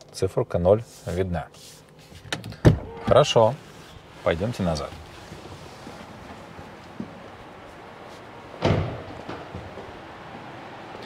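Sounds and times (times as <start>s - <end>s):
car door shutting thud: 8.6s - 9.8s.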